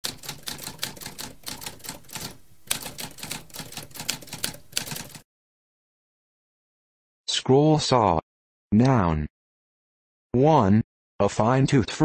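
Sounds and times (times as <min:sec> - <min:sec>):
typewriter typing: 0:00.0 - 0:05.2.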